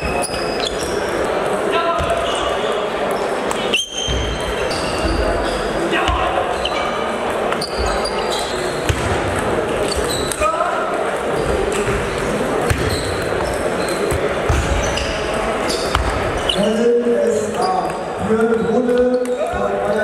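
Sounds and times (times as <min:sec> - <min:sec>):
murmur of voices: 0:00.0 - 0:20.0.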